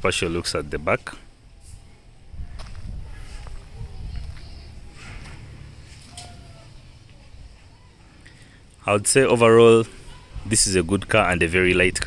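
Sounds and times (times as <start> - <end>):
low rumble on microphone: 1.6 - 5.8
footsteps on grass and dirt: 2.4 - 6.1.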